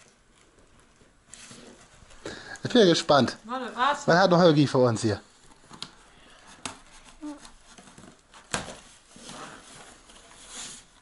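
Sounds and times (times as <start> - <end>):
cardboard rustling and scraping: 0.0 - 2.2, 5.4 - 11.0.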